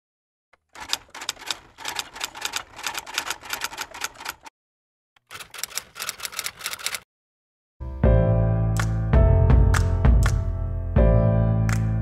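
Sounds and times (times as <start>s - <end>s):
typewriter keys clacking: 0.6s - 4.5s, 5.2s - 7.0s.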